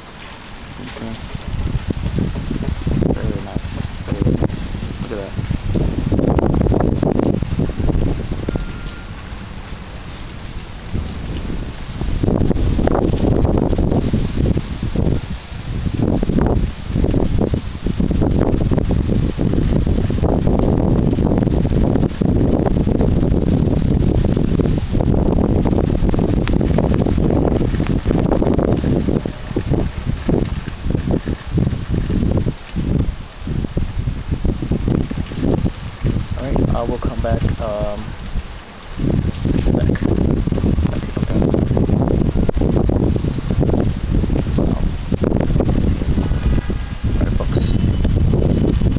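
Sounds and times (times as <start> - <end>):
gusty wind buffeting microphone: 0.0 - 48.9.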